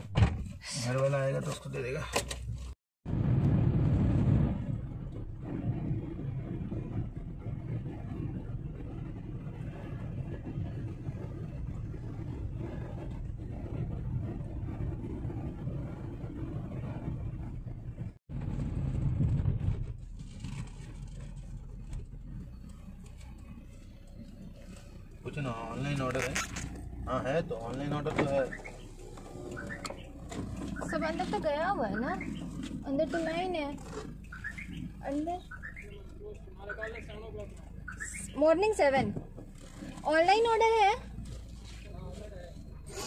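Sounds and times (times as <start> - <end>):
car cabin road and engine rumble: 0.0 - 43.0.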